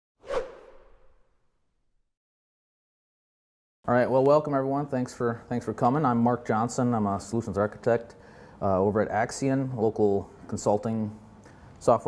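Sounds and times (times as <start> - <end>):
whoosh sound effect: 0.2 - 1.4.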